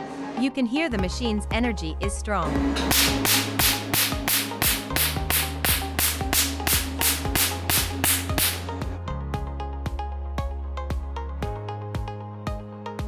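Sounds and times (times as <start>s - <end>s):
background music with bass: 0.0s - 13.0s.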